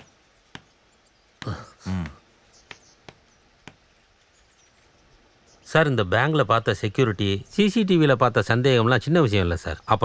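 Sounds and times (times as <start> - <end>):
man's low voice: 1.4 - 2.3.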